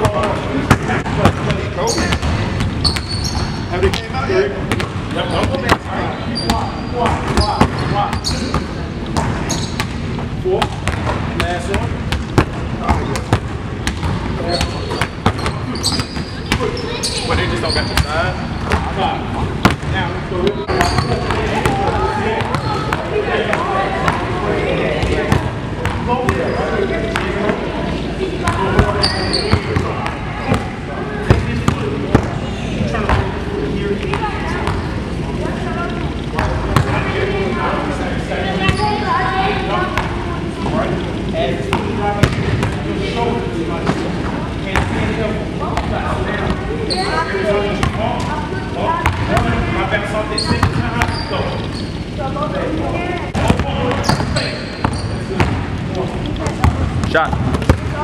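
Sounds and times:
voices talking: 0:00.0 - 0:58.0.

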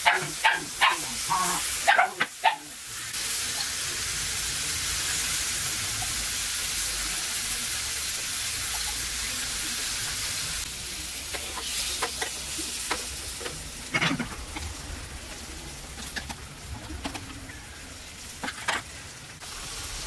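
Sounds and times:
squid sizzling in hot oil: 0:00.0 - 0:16.7, 0:17.5 - 0:20.0.

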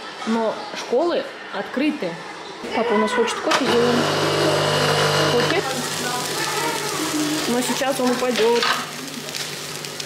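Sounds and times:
coffee machine pump humming: 0:03.6 - 0:10.0
food sizzling in a frying pan: 0:03.8 - 0:10.0.

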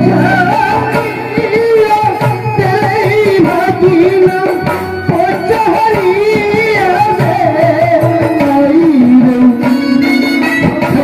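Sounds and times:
hand drum strokes: 0:00.0 - 0:11.0.

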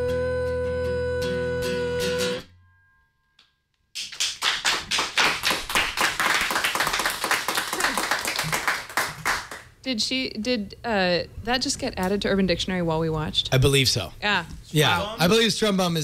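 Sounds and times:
woman singing: 0:00.0 - 0:02.4
acoustic guitar: 0:00.0 - 0:03.4
applause: 0:04.0 - 0:09.8.

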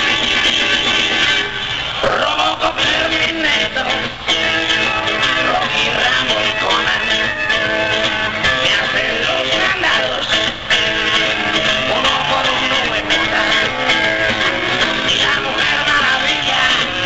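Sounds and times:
live rock band with guitar: 0:00.0 - 0:17.0.

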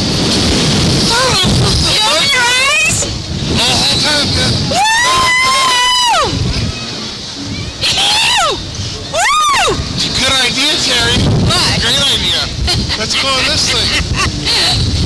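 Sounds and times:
wind rumble on microphone: 0:00.0 - 0:15.0
people screaming: 0:01.0 - 0:15.0.

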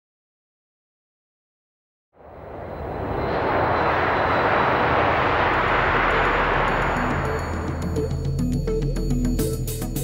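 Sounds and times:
steady rushing noise: 0:02.2 - 0:08.8.

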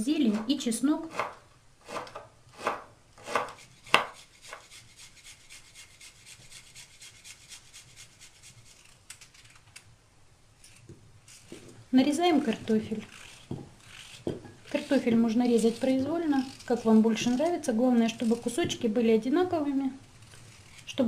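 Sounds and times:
knife chopping on wooden board: 0:01.1 - 0:04.2.

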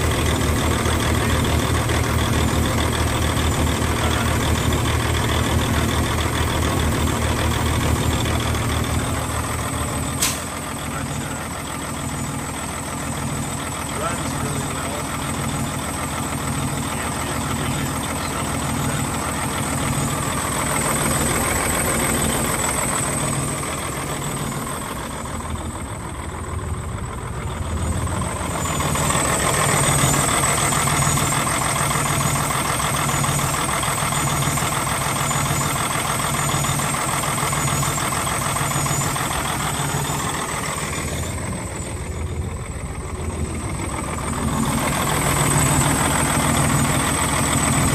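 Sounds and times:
diesel truck engine idling: 0:00.0 - 0:47.9.

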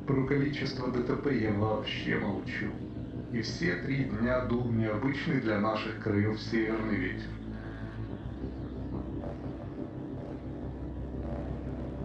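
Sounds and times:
dense hum: 0:00.0 - 0:12.0
low rumbling drone: 0:00.0 - 0:12.0.

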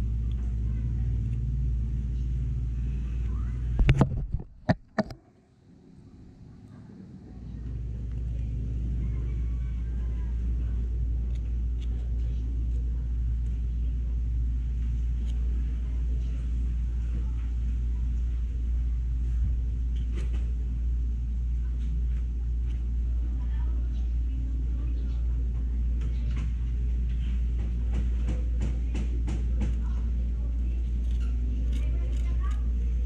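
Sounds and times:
low motor rumble: 0:00.0 - 0:05.2, 0:06.2 - 0:33.0.

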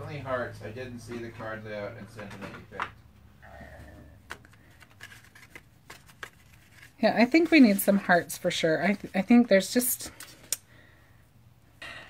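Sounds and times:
paper clicks and rustles: 0:04.2 - 0:08.1.

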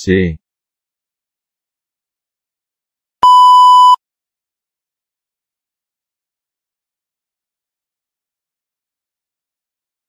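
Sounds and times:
loud electronic beep: 0:03.2 - 0:04.0.

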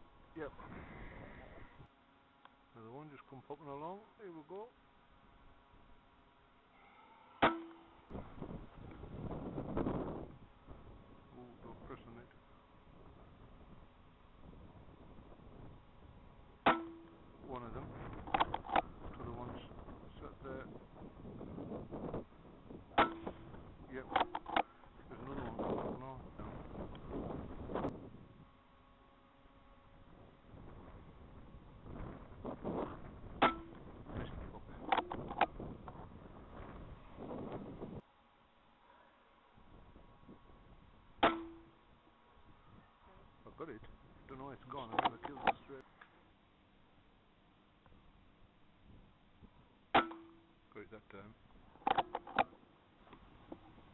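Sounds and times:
wind: 0:00.0 - 0:53.9.

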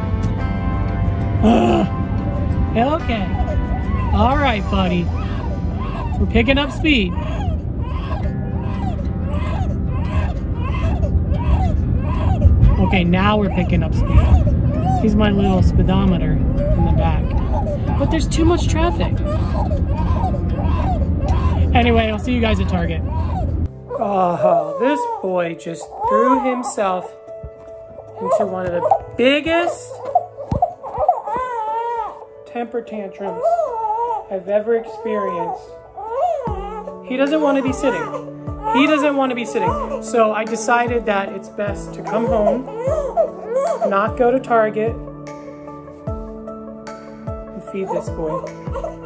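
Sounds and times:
baby crying in rhythmic wails: 0:01.4 - 0:49.0.

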